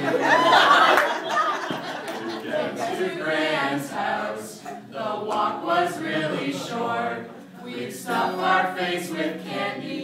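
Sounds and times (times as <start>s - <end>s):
group singing: 0.0s - 10.0s.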